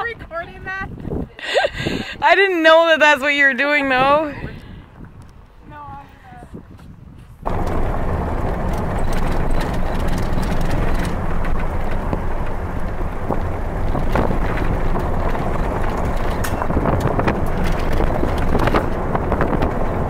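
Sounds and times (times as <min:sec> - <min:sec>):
road and wind noise in car: 0:00.0 - 0:20.0.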